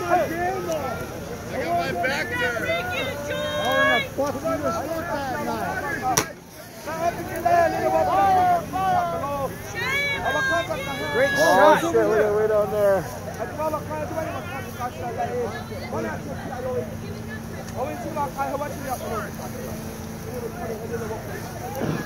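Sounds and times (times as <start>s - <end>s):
crowd shouting: 0.0s - 22.0s
sharp crack: 6.1s - 6.4s.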